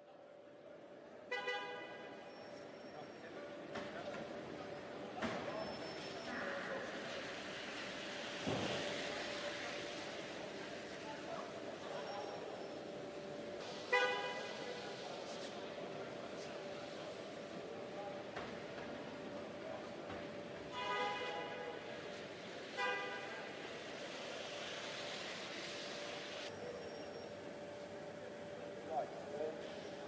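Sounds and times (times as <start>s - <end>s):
factory hum: 0.0s - 30.0s.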